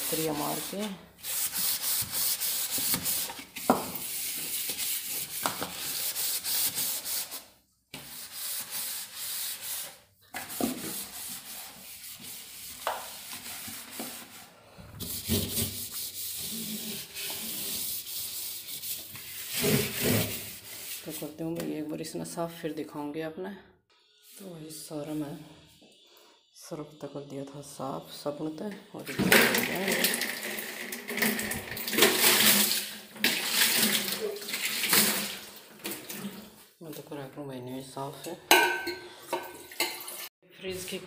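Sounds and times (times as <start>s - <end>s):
cloth wiping plastic: 0.0s - 21.4s.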